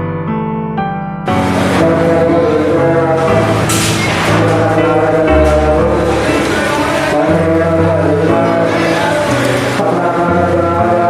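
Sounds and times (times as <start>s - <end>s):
voices chanting: 1.5s - 11.0s.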